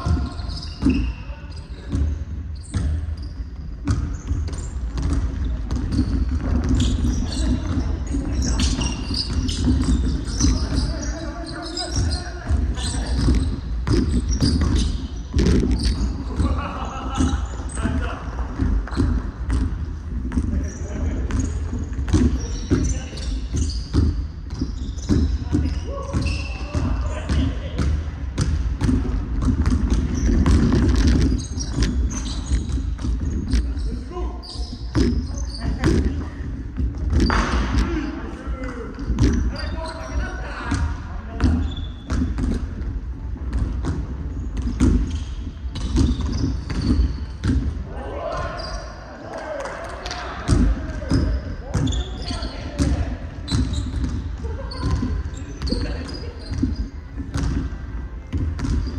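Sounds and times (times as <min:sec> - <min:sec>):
basketballs bouncing on hardwood: 0:01.8 - 0:34.0, 0:34.8 - 0:39.6, 0:40.7 - 0:47.8, 0:50.4 - 0:58.9.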